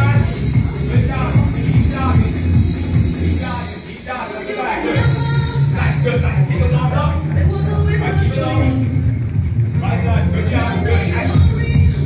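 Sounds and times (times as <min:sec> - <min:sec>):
workout music with heavy bass: 0:00.0 - 0:12.0.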